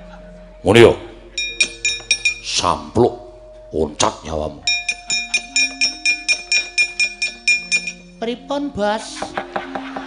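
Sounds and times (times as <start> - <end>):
metal plates clinking: 1.4 - 2.5.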